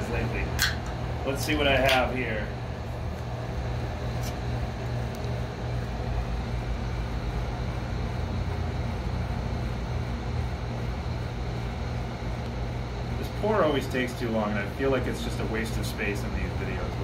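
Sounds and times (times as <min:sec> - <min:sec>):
machinery hum and hiss: 0:00.0 - 0:17.0.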